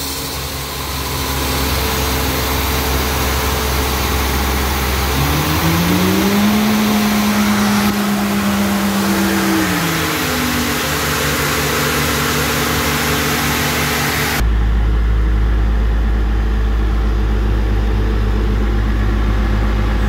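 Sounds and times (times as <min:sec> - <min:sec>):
air compressor diesel engine: 0:00.0 - 0:20.0.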